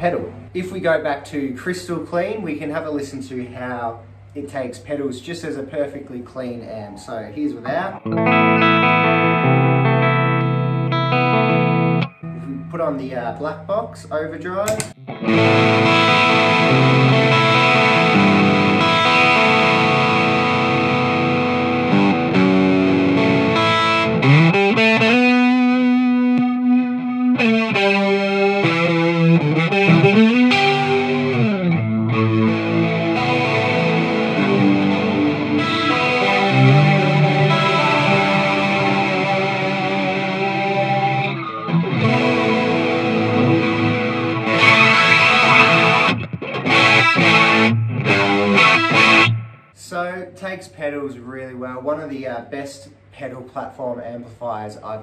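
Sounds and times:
overdriven electric guitar: 7.7 - 12.8, 14.6 - 49.8.

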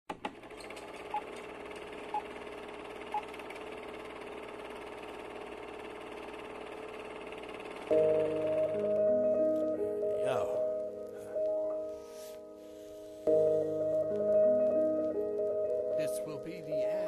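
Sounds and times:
film projector whirring: 0.2 - 10.2.

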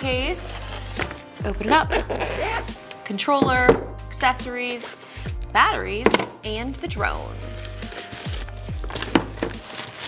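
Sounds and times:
background music: 0.0 - 10.0
protective wrap crinkling: 7.4 - 10.0.

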